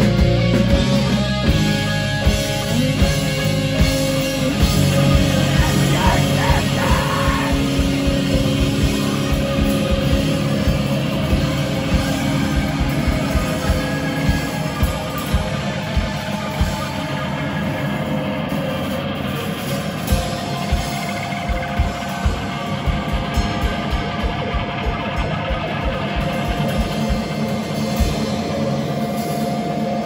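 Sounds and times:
live rock band playing: 0.0s - 30.0s.

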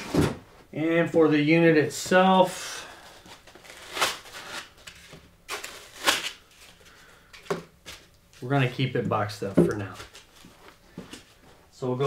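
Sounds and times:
plastic wrap rustling: 2.9s - 11.3s.

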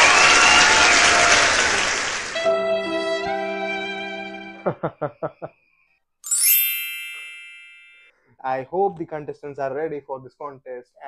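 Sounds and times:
struck chime ding: 6.3s - 8.1s.

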